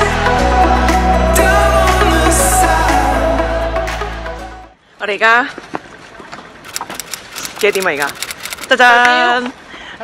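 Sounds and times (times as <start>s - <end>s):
quick crackling clicks: 6.7s - 8.9s.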